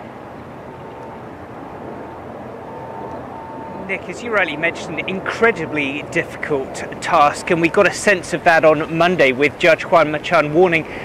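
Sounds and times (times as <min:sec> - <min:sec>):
city street traffic: 0:00.0 - 0:11.0
faint thin steady tone: 0:00.1 - 0:06.0.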